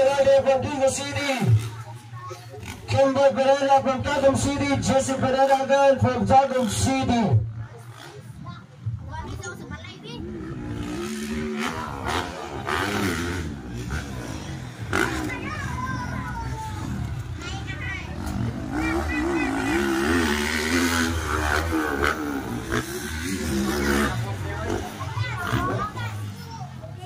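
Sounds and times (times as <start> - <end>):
dirt bike engines revving: 0.0 - 27.0
spectators calling out: 14.0 - 27.0.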